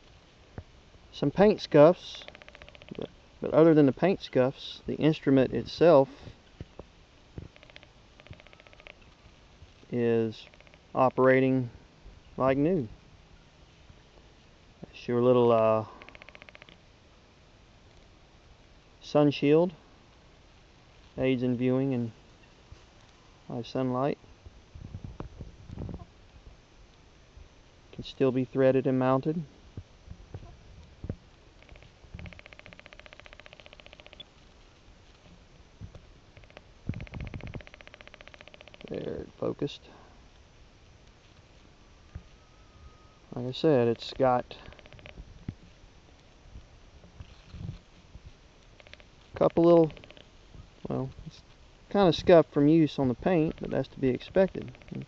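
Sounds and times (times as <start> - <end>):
rapid high-pitched ticking trill: 1.4 - 3.1, 7.5 - 9.1, 10.4 - 11.0, 15.9 - 16.9, 31.6 - 34.3, 36.2 - 39.1, 44.6 - 45.2, 48.7 - 50.3, 53.2 - 55.0.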